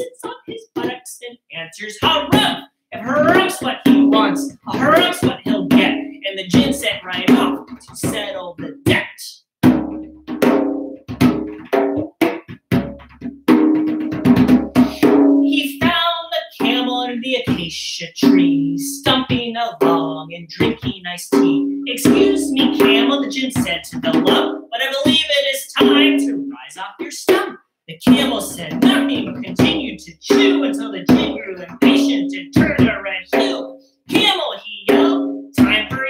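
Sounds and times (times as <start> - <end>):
wordless sung melody: 0.0 - 9.0
djembe hand drumming: 2.0 - 2.6, 3.2 - 15.9, 16.6 - 26.5, 27.3 - 36.0.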